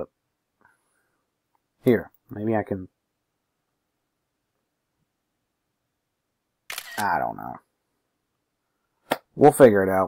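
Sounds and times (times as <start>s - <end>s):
man talking: 1.8s - 3.0s, 6.9s - 7.7s, 9.3s - 10.0s.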